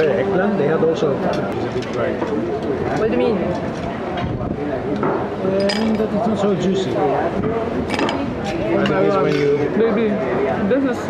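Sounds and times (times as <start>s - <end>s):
cutlery clinking on plates: 5.0s - 6.2s, 7.9s - 8.2s, 8.8s - 9.7s.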